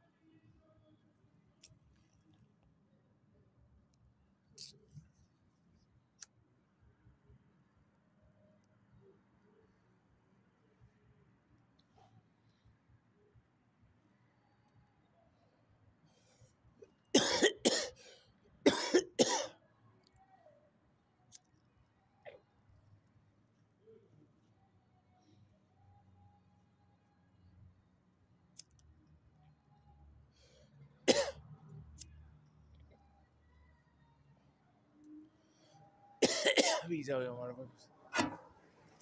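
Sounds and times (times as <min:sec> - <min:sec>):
man coughing hard: 0:17.2 - 0:17.9, 0:18.6 - 0:19.5, 0:31.1 - 0:31.4, 0:36.2 - 0:36.9.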